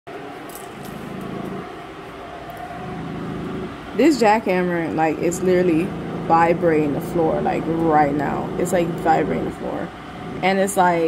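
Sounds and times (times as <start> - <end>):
muffled jackhammer rumble: 0.8 - 1.8, 2.6 - 11.0.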